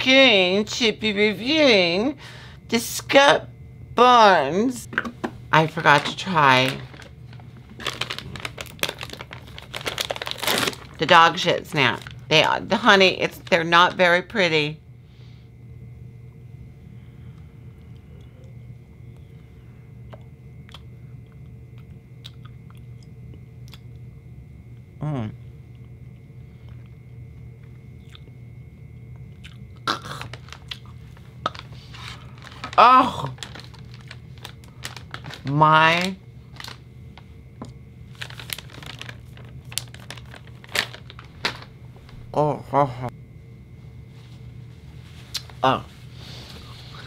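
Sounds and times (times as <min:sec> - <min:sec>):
packet crinkling: 0:05.7 - 0:12.4, 0:29.9 - 0:37.3, 0:38.0 - 0:42.2
person chewing crunchy snack: 0:28.0 - 0:28.3, 0:29.2 - 0:32.7.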